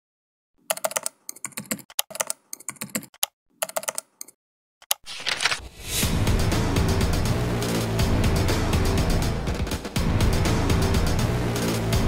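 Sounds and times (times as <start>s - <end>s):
computer keyboard typing: 0.6s - 5.6s.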